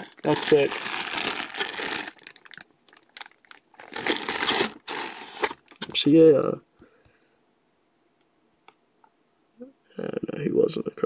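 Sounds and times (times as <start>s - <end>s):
plastic bag crinkling: 0.0s - 5.9s.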